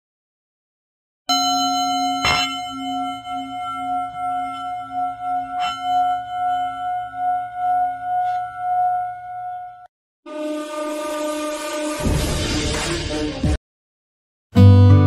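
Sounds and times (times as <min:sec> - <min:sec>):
singing bowl ringing: 0:01.3 - 0:09.9.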